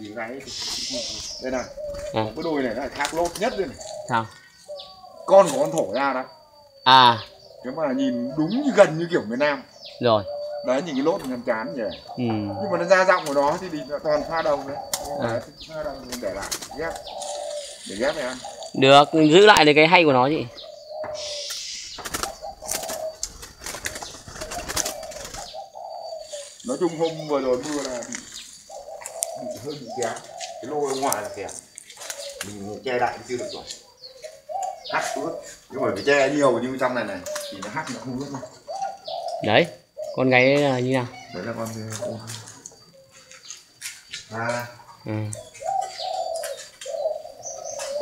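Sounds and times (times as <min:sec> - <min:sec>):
birds chirping: 0:00.0 - 0:48.0
doves cooing: 0:00.0 - 0:48.0.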